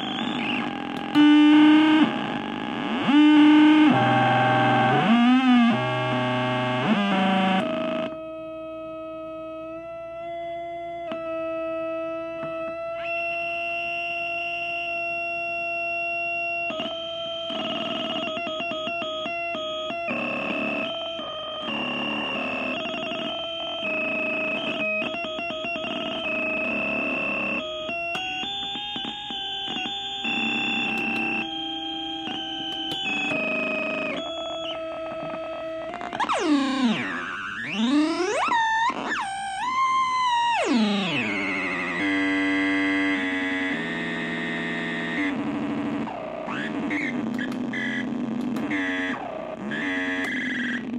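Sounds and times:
electronic oscillator drone tones: 0:00.0 - 0:10.4, 0:16.7 - 0:50.9.

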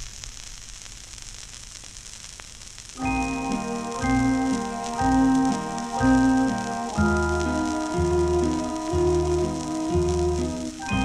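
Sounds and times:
record surface hiss and crackle: 0:00.0 - 0:11.0.

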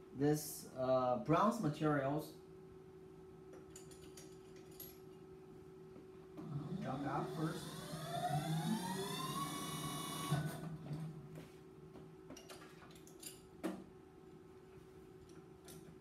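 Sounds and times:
steady low hum: 0:00.0 - 0:16.0
motor whine rising in pitch: 0:06.4 - 0:10.9.

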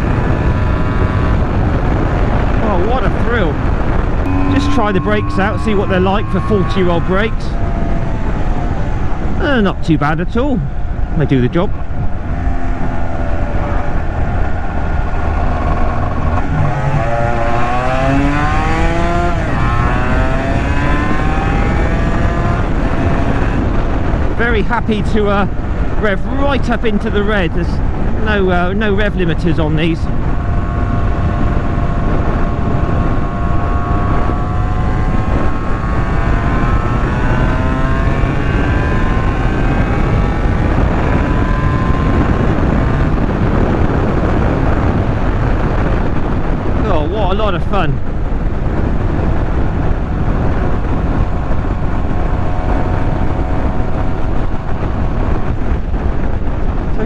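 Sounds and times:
motorcycle engine revving through gears: 0:00.0 - 0:24.5, 0:25.1 - 0:57.0
wind rush on microphone: 0:00.0 - 0:57.0.

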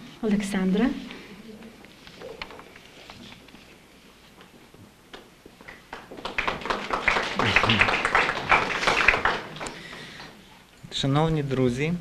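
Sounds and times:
audience clapping: 0:05.6 - 0:10.4.

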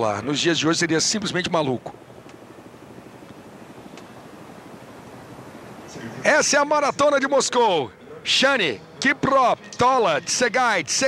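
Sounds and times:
faint vehicle drone: 0:00.0 - 0:11.0.

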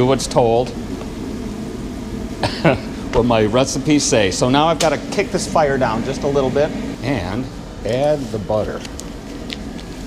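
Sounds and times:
gas fire rumbling: 0:00.0 - 0:10.0.

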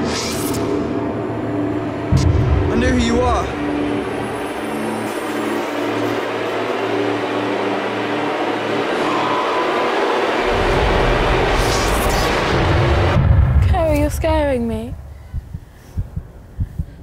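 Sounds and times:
deep bass rumble: 0:01.8 - 0:04.1, 0:10.4 - 0:17.0.

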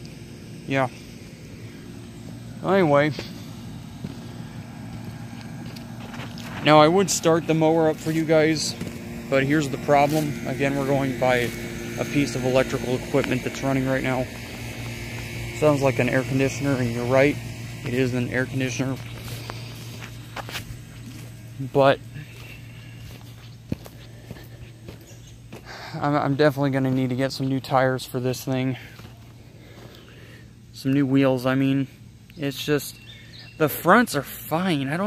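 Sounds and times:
air conditioner humming: 0:00.0 - 0:35.0
footsteps on grass: 0:01.0 - 0:30.0.

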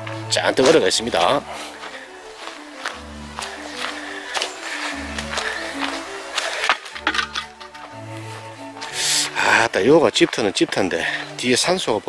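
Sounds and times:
slow background music: 0:00.0 - 0:12.0.

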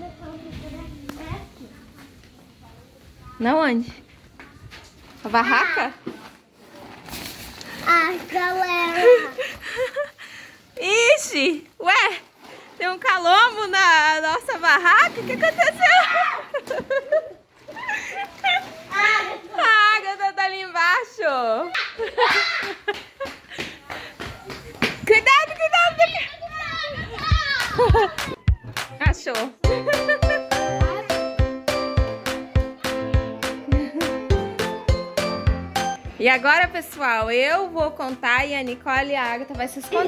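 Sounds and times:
tent fabric rustling: 0:04.9 - 0:09.6, 0:10.5 - 0:19.6
children shouting and squealing: 0:15.8 - 0:16.6, 0:21.7 - 0:22.9, 0:25.4 - 0:29.1.

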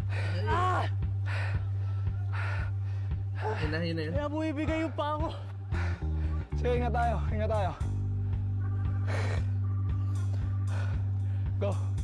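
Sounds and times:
soft beat: 0:00.0 - 0:12.0.

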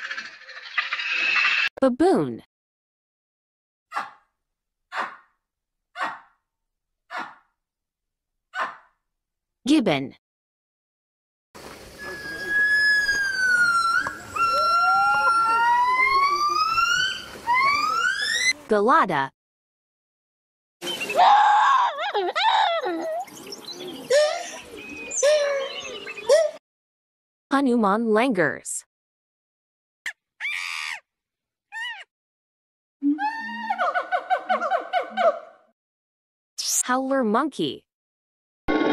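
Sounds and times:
baboon barking: 0:03.9 - 0:04.2, 0:04.9 - 0:05.3, 0:06.0 - 0:06.4, 0:07.1 - 0:07.5, 0:08.6 - 0:08.9
monkey high harsh call: 0:06.0 - 0:06.3, 0:12.0 - 0:18.5, 0:30.4 - 0:31.0, 0:31.7 - 0:32.1.

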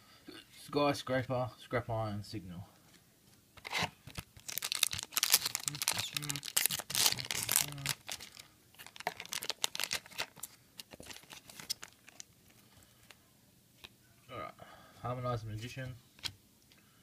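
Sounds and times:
foil wrapper crinkling: 0:03.6 - 0:12.6.

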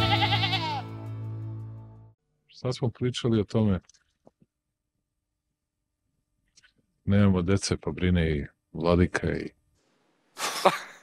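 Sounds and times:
sheep bleating: 0:00.0 - 0:01.0.

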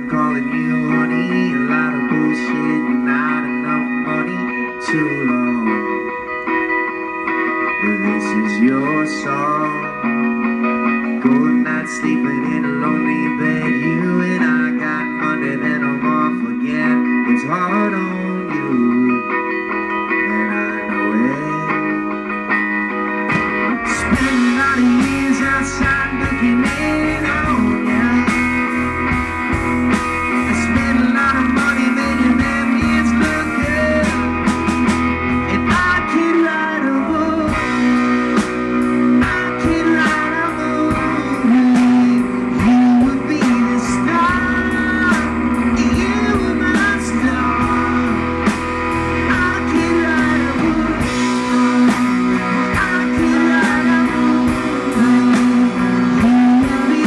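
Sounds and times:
bass guitar: 0:00.0 - 0:57.0
guitar: 0:00.0 - 0:57.0
drum kit: 0:21.8 - 0:57.0.

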